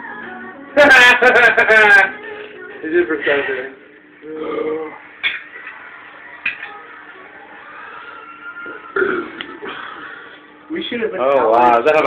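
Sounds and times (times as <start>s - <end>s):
man belching: 4.2s - 5.0s, 8.9s - 9.6s.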